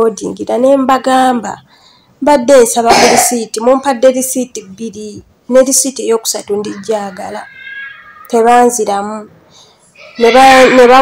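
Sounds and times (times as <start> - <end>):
woman speaking: 0.0 - 7.5, 8.3 - 9.3, 10.2 - 11.0.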